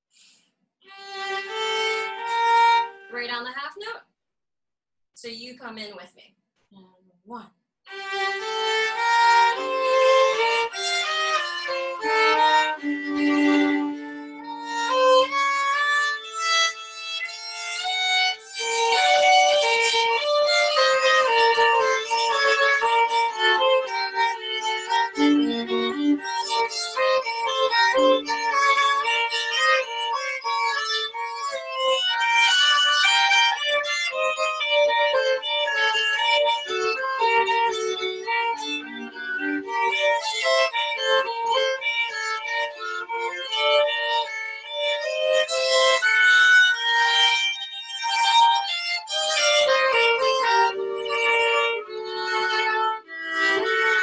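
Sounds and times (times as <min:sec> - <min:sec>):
two violins playing a duet: 0:00.9 - 0:03.1, 0:07.9 - 0:54.0.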